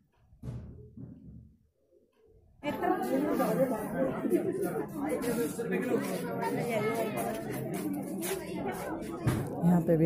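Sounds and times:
crowd chatter: 2.6s - 10.0s.

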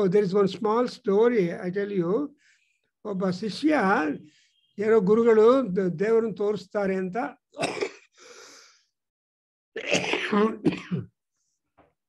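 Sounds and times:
man clearing throat and coughing: 7.6s - 8.2s, 9.8s - 11.2s.

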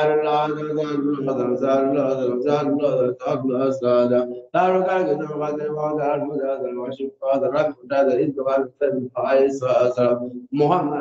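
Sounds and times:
person chanting melodically: 0.0s - 11.0s.

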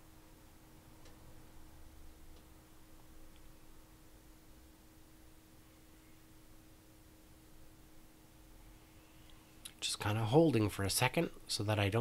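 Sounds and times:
faint steady hum: 0.0s - 12.0s
man speaking: 9.7s - 12.0s.

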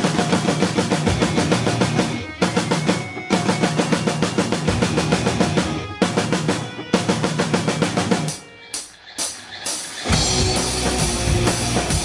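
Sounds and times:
fast drum roll on snare and toms: 0.0s - 12.0s.

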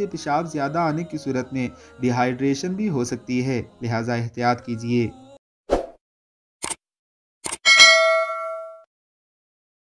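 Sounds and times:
bell ding: 7.7s - 8.9s.

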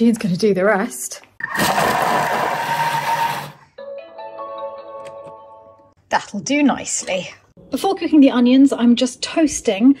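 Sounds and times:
food processor motor whirring: 1.4s - 3.6s
background music with sustained notes: 3.8s - 5.9s.

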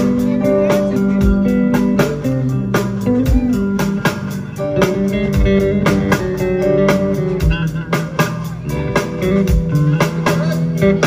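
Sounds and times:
drums keeping a steady beat: 0.0s - 11.0s
electric bass: 0.0s - 11.0s
guitar: 0.0s - 11.0s.

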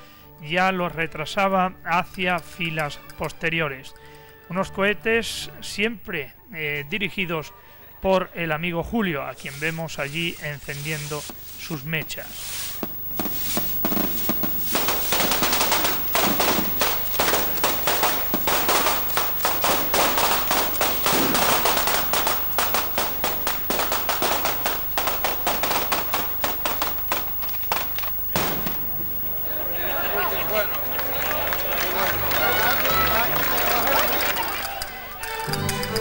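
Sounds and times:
firecrackers banging: 9.4s - 36.0s
crowd voices: 26.2s - 36.0s.

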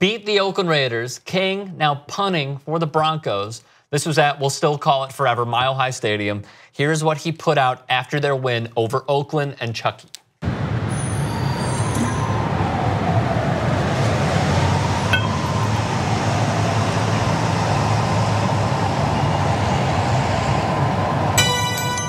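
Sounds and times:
faint wavering tone: 15.1s - 15.8s
music-box melody: 21.4s - 22.0s.

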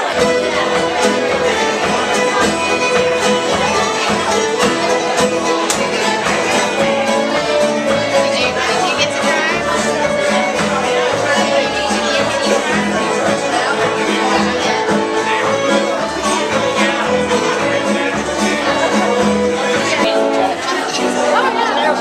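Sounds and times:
string band playing bluegrass: 0.0s - 22.0s.

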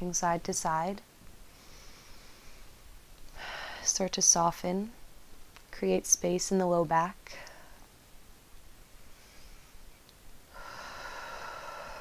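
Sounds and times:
person breathing out: 10.5s - 12.0s.

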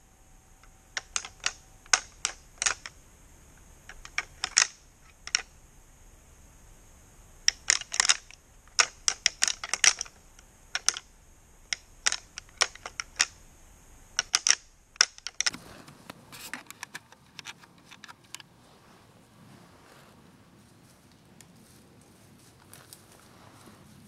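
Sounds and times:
faint steady background noise: 0.0s - 24.0s
sharp clicks and ticks: 0.6s - 3.0s, 3.9s - 5.5s, 7.4s - 11.1s, 11.7s - 13.4s, 14.2s - 15.6s.

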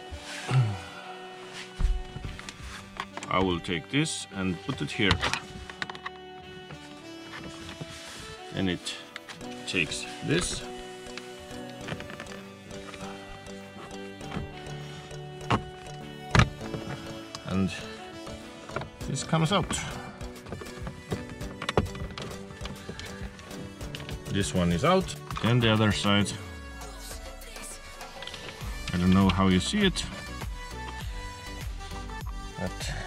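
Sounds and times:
instrumental music: 0.0s - 33.0s.

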